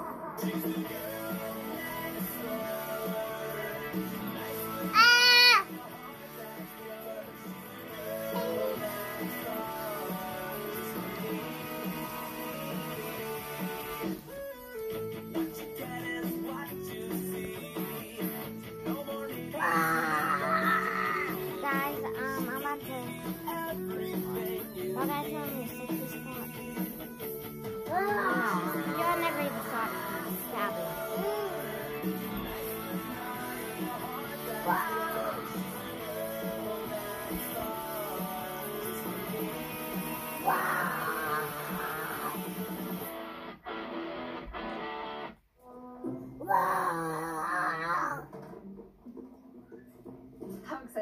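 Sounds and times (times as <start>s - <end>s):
pop song through tv speakers: 0.0s - 51.0s
wavering wail-like voice: 8.2s - 9.1s, 19.5s - 21.6s, 27.9s - 29.6s, 30.9s - 31.8s, 40.3s - 42.5s, 45.7s - 48.3s.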